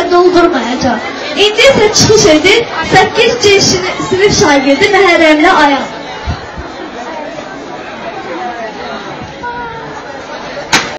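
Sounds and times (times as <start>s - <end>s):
chatter of many people: 0.0s - 10.9s.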